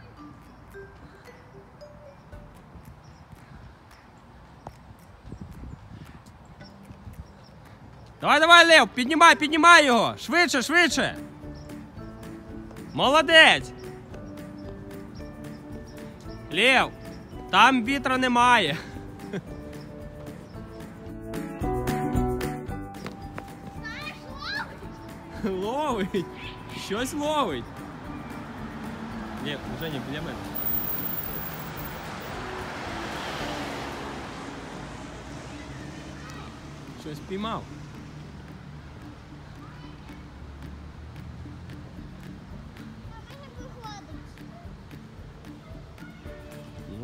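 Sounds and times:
faint background music: 0:00.0 - 0:47.0
wind rumble on microphone: 0:02.7 - 0:08.0
child calling out: 0:23.8 - 0:24.9.

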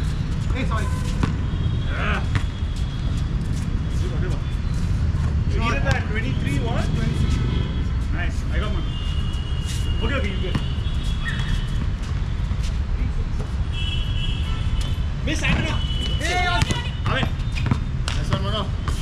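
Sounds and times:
players calling out: 0:15.4 - 0:17.4.

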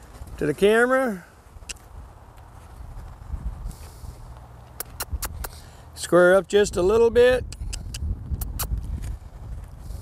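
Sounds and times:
footsteps shuffling: 0:00.0 - 0:04.8
horse hooves: 0:00.0 - 0:05.8, 0:07.5 - 0:10.0
sharp clicks: 0:04.7 - 0:05.6.

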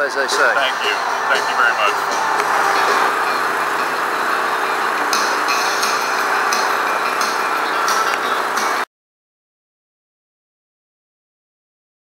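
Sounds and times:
engine and traffic noise: 0:00.0 - 0:08.9.

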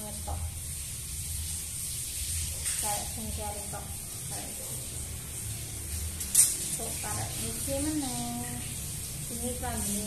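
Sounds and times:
woman speaking: 0:00.0 - 0:00.6, 0:02.8 - 0:04.7, 0:06.8 - 0:10.0
low hum and hiss of room noise: 0:00.0 - 0:10.0.

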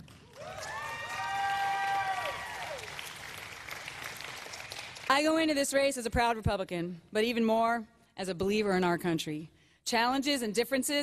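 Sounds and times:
audience applauding: 0:00.0 - 0:05.1.

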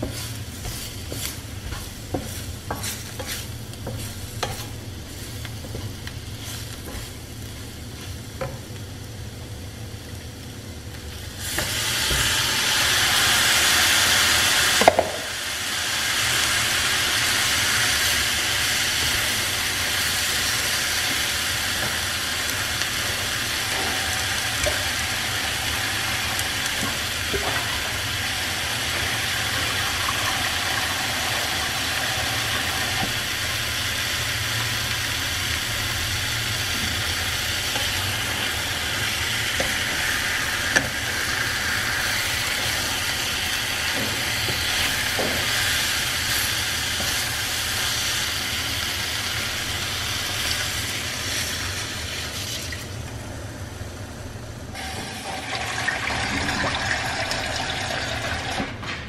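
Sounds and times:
meat sizzling in a frying pan: 0:00.0 - 0:52.8.

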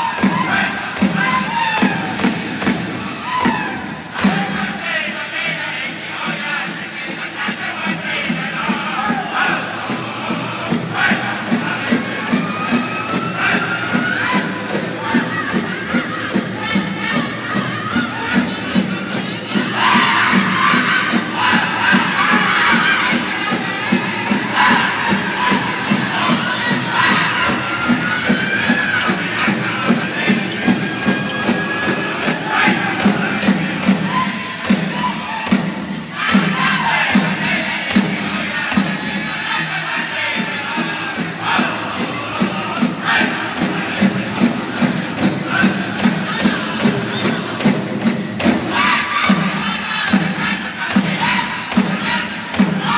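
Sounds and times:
high-pitched group singing: 0:00.0 - 0:52.9
steady drumbeat: 0:00.0 - 0:52.9.

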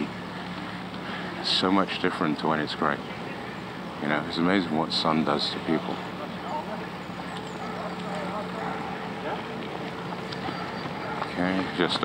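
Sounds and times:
faint voices of people: 0:00.0 - 0:12.0
bicycle rolling on path: 0:05.4 - 0:12.0.

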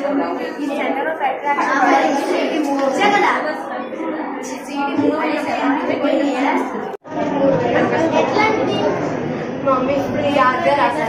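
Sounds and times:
indoor chatter: 0:00.0 - 0:11.0.

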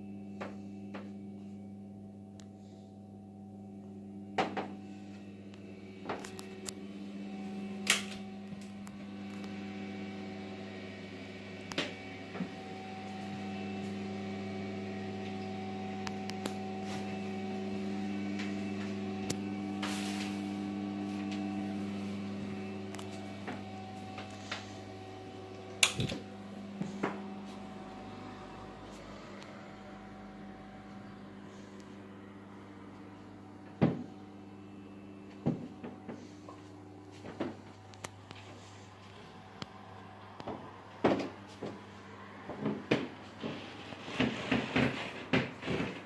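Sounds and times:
electrical hum: 0:00.0 - 0:46.0.

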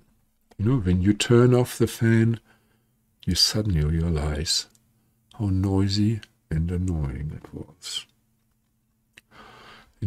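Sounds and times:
faint intake of breath: 0:09.3 - 0:10.0.

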